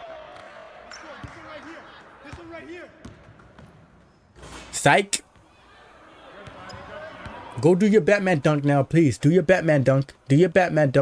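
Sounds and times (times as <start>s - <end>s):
basketball bouncing on gym floor: 2.3s - 3.9s.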